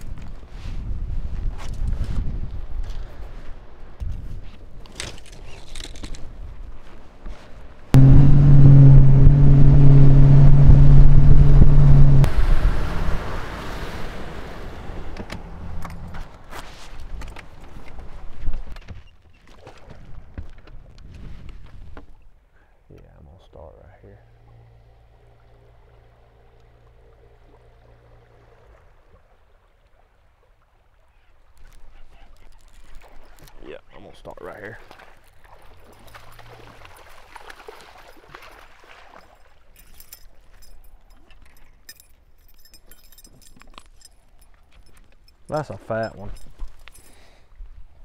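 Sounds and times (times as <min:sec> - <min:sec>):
water and wind noise: 0:00.0 - 0:23.0, 0:23.6 - 0:48.0
outboard motor running: 0:08.0 - 0:16.2, 0:24.2 - 0:29.1.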